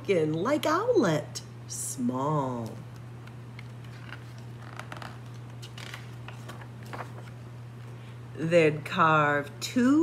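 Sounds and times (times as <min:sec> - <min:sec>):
steady low hum: 0:00.0 - 0:10.0
paper page turning: 0:03.2 - 0:07.5.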